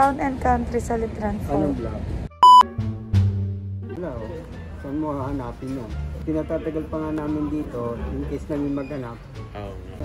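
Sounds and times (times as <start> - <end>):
background music with low notes: 2.3 - 10.0
electronic beep: 2.4 - 2.6.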